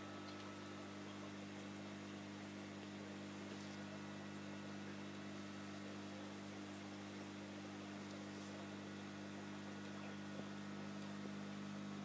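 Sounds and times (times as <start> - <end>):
aquarium equipment humming: 0.0 - 12.0.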